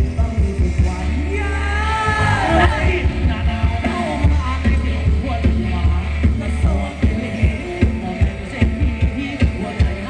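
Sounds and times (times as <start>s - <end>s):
dance band music: 0.0s - 10.0s
electric bass: 0.0s - 10.0s
person singing: 0.0s - 10.0s
steady drum beat: 0.0s - 10.0s.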